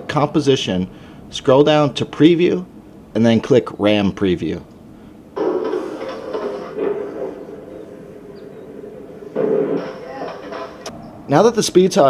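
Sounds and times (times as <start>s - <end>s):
skateboard wheels rolling on concrete: 5.4s - 10.9s.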